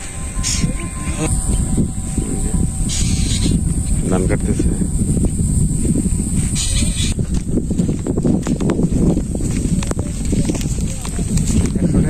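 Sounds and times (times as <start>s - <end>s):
wind rumbling on microphone: 0.0s - 12.0s
footsteps on paved road: 4.9s - 12.0s.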